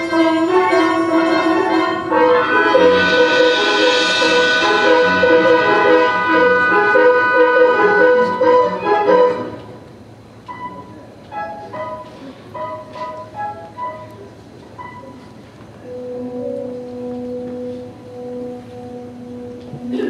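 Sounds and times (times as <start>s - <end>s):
orchestra playing dance music: 0.0s - 9.8s.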